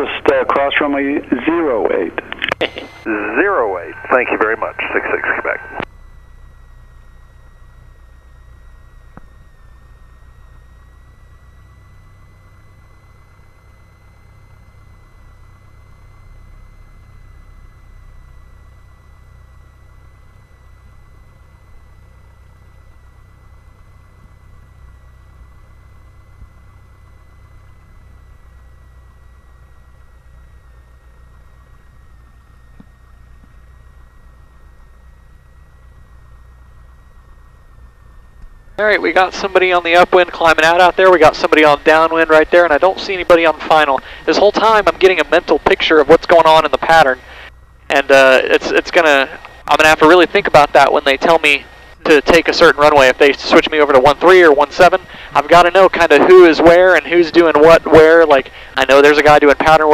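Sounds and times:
piston engine low drone: 0.0 - 59.9
thin steady whine: 0.0 - 59.9.

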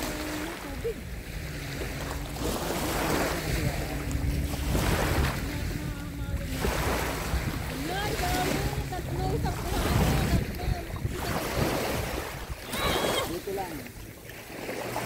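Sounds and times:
small waves breaking on sand: 0.0 - 15.0
wind rumbling on microphone: 0.0 - 15.0.

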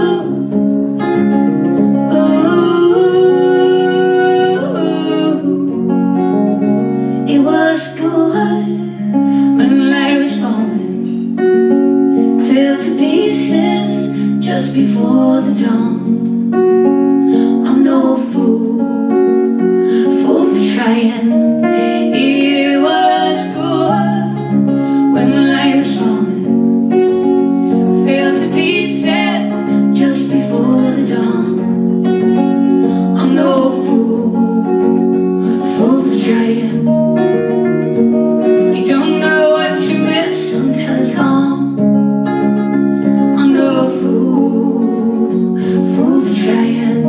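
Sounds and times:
women singing: 0.0 - 11.6, 12.2 - 16.4, 17.1 - 41.8, 42.5 - 47.0
acoustic guitars strumming: 0.0 - 47.0.

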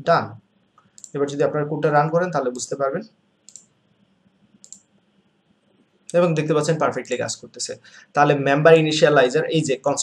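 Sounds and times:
computer mouse click: 0.8 - 1.2, 3.4 - 3.7, 4.6 - 4.9.

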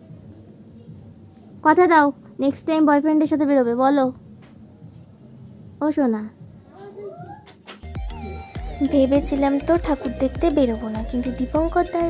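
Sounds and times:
music: 7.7 - 12.0.

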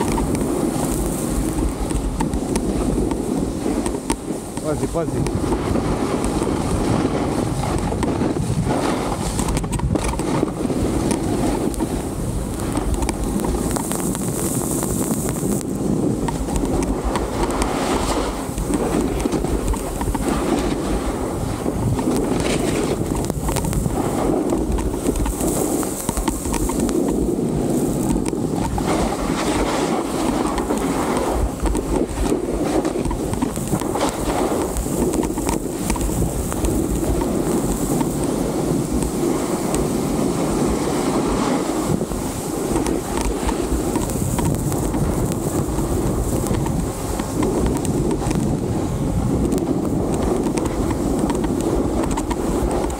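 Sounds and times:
snowboard scraping over snow: 0.0 - 52.9
wind on microphone: 0.0 - 52.9.

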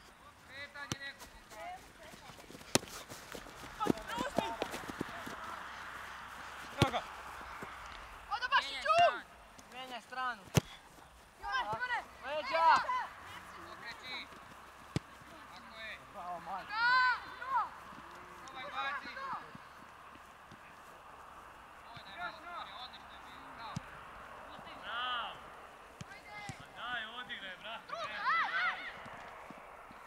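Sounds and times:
ball being kicked: 2.6 - 5.4, 6.7 - 7.7, 10.4 - 10.9
young players shouting: 3.5 - 9.4, 11.4 - 14.4, 15.2 - 26.8, 27.8 - 29.5.

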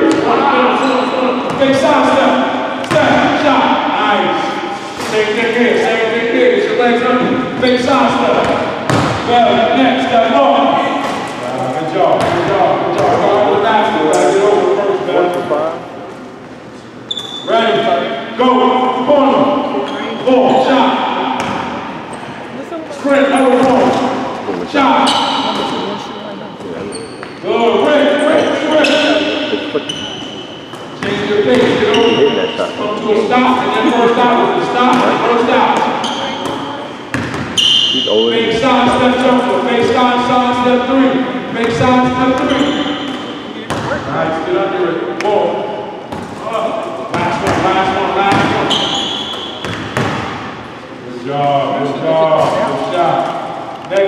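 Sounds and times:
basketballs bouncing on hardwood floor: 8.4 - 9.3, 12.2 - 13.2, 34.9 - 37.6, 43.7 - 44.1, 48.3 - 50.4.

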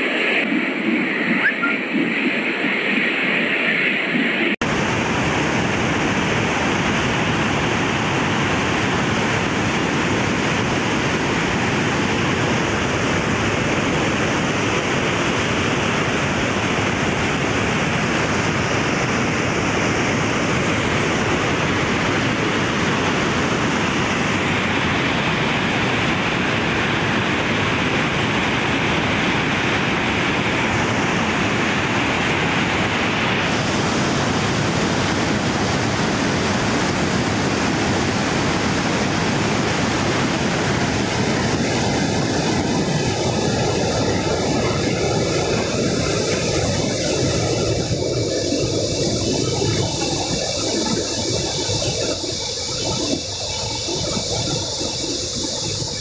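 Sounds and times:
floodwater rushing: 4.6 - 56.0.

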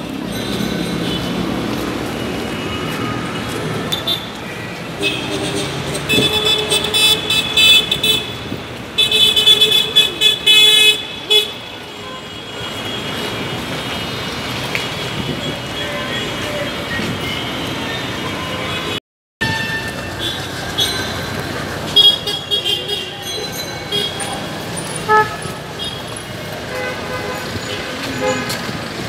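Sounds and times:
busy street traffic: 0.0 - 29.0
vehicle horns honking: 2.1 - 28.9.

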